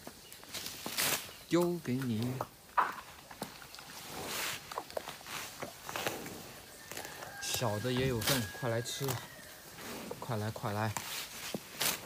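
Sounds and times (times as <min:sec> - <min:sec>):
buffalo crunching and chewing: 0:00.0 - 0:12.0
rustle of leaves: 0:00.0 - 0:12.0.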